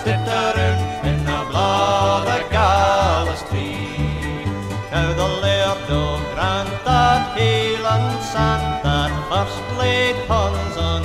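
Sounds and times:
fiddle playing folk tune: 0:00.0 - 0:11.0
strummed acoustic guitars: 0:00.0 - 0:11.0.

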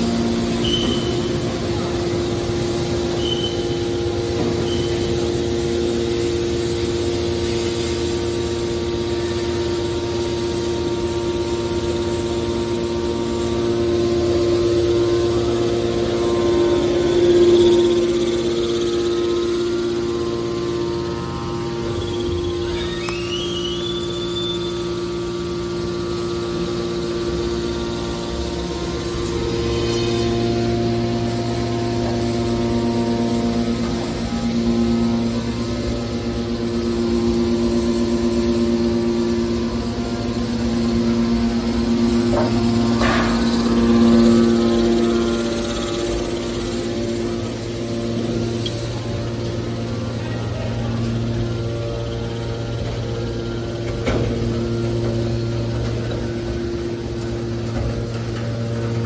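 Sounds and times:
hydraulic motor and pump hum: 0:00.0 - 0:59.0
rising machine whine: 0:00.0 - 0:59.0.

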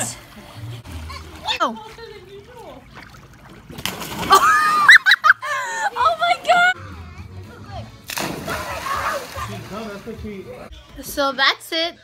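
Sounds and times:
water splashing: 0:00.0 - 0:05.3, 0:08.0 - 0:10.3
water sloshing: 0:00.0 - 0:06.7, 0:07.9 - 0:10.3.

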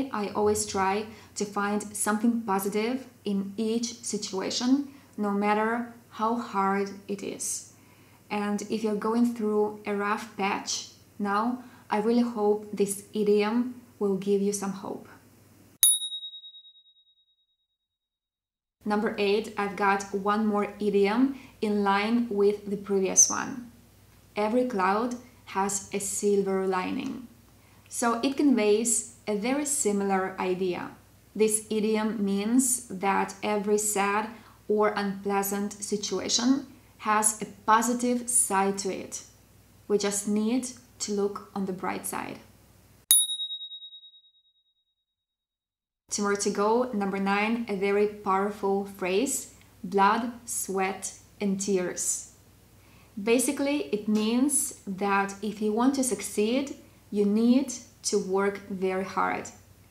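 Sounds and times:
high bell ding: 0:15.8 - 0:17.0, 0:43.1 - 0:44.4.

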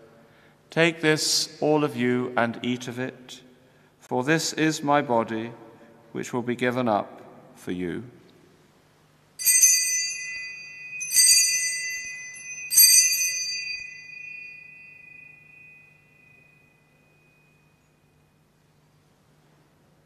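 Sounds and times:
altar bell ringing: 0:09.4 - 0:18.5.

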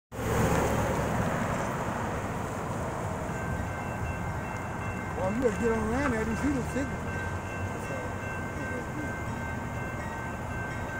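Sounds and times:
vehicle engine and tyres rumbling: 0:00.1 - 0:10.6
crossing electronic bell ringing: 0:03.2 - 0:10.9.

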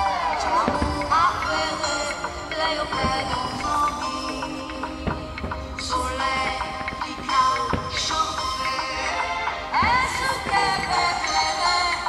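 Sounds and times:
person singing with music: 0:00.0 - 0:12.0.

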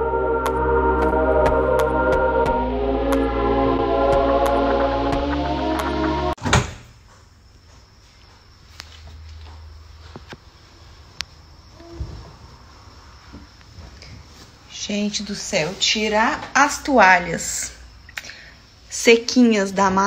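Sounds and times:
background music: 0:00.0 - 0:06.4.

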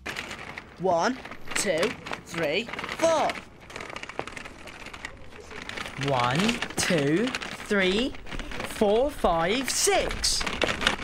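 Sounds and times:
pushchair wheels rattling on bricks: 0:00.0 - 0:11.0.

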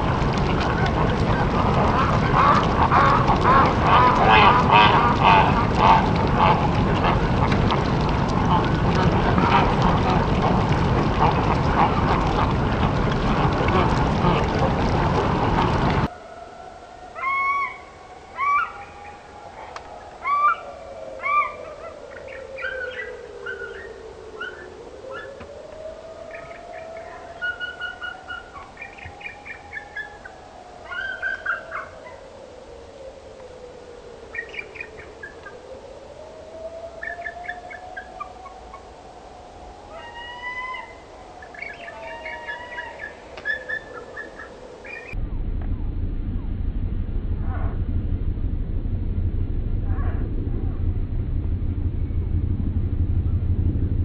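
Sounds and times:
ducks quacking: 0:00.5 - 0:16.1
eagles calling: 0:00.5 - 0:25.4, 0:26.3 - 0:32.2, 0:39.9 - 0:45.2
faint rising and falling tone: 0:44.8 - 0:54.0.

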